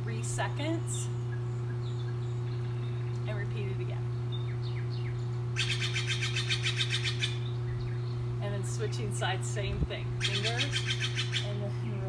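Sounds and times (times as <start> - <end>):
steady low hum: 0.0 - 12.0
songbird trilling: 1.0 - 3.2, 4.3 - 8.3, 10.2 - 11.6.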